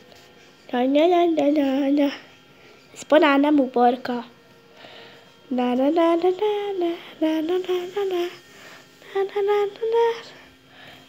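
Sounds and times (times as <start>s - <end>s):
person humming a tune: 5.5s - 10.4s.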